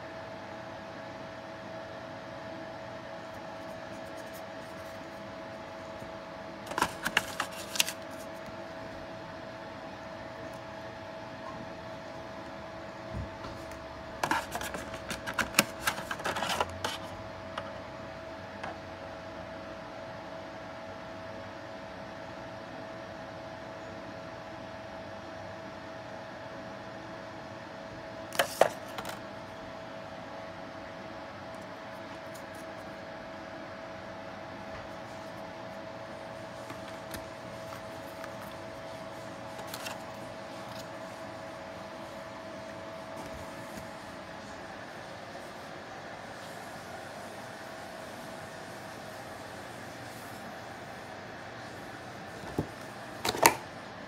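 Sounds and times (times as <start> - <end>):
faint steady hum: 0.0 - 54.0
cardboard packaging handling: 6.7 - 8.4, 13.6 - 17.7, 28.3 - 29.2, 36.3 - 41.1.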